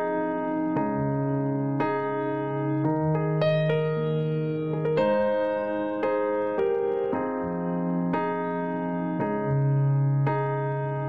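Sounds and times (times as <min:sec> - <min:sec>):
keyboard chords: 0:00.0 - 0:11.0.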